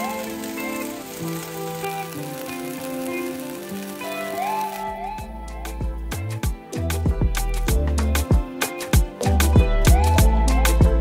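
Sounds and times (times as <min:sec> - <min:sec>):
beef sizzling in a frying pan: 0:00.0 - 0:10.6
soft background music: 0:00.0 - 0:11.0.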